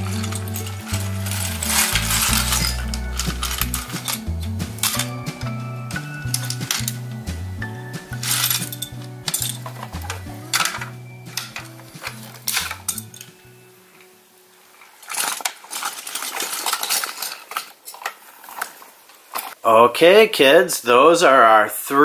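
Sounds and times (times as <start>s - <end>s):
plastic toy bricks clattering: 0.0s - 7.2s, 8.0s - 19.6s
background music: 0.0s - 15.1s.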